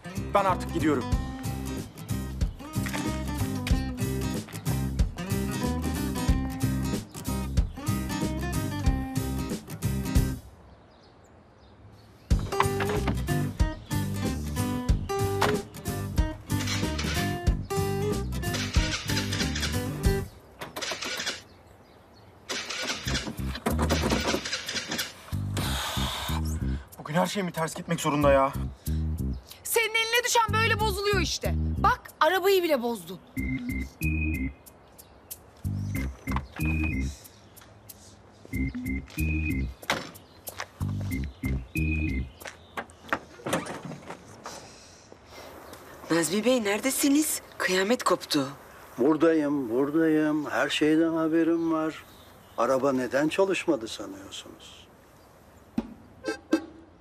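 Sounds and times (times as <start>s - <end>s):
background music with beat: 1.0s - 10.4s, 12.3s - 16.6s
car engine cranking: 16.5s - 17.4s, 18.4s - 21.5s, 22.5s - 25.7s
light knocks: 55.8s - 56.1s.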